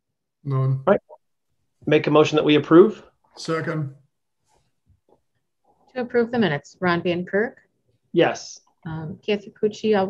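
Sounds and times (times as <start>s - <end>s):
woman speaking: 6.0s - 7.6s, 8.8s - 10.0s.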